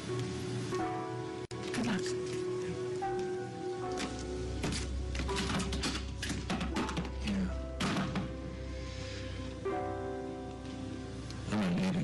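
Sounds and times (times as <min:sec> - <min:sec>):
soft dramatic background score: 0:00.0 - 0:12.0.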